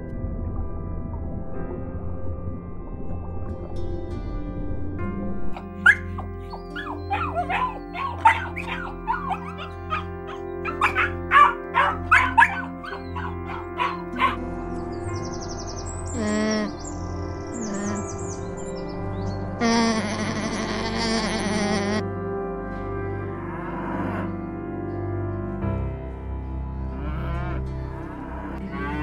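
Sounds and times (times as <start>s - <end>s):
soft background music: 0.0s - 29.0s
puppies yipping and whimpering: 5.8s - 14.4s.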